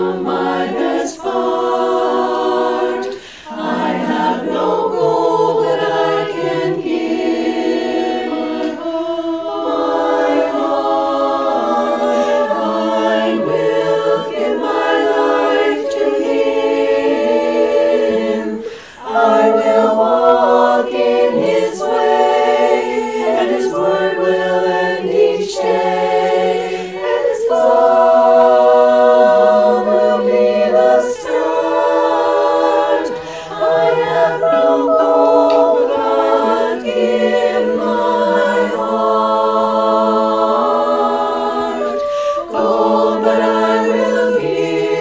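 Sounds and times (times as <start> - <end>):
women's choir singing in harmony: 0.0 - 45.0.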